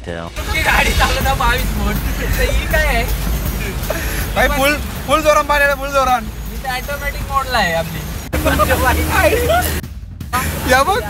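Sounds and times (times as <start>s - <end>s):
person talking: 0.0s - 9.8s
road and engine rumble: 0.0s - 11.0s
rain hissing on windscreen: 0.4s - 11.0s.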